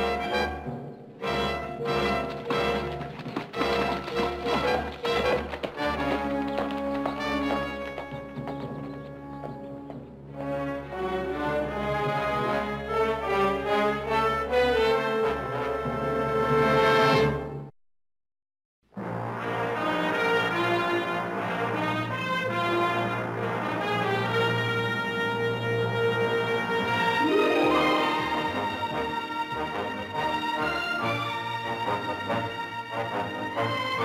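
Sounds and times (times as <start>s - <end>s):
orchestral music with brass: 0.0s - 17.7s, 18.9s - 34.0s.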